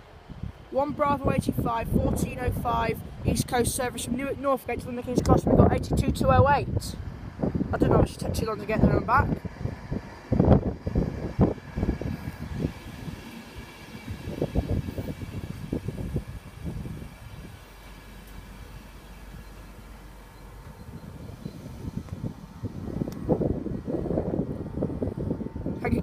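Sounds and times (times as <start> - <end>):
faint train whine: 7.0 - 26.0
train wheels rumbling on rails: 7.1 - 26.0.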